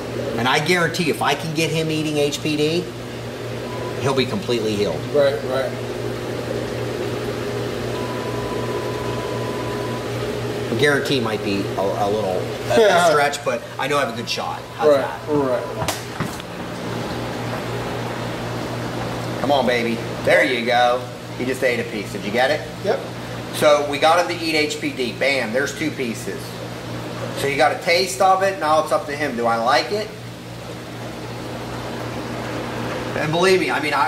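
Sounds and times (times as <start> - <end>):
aquarium pumps humming: 0.0 - 34.0.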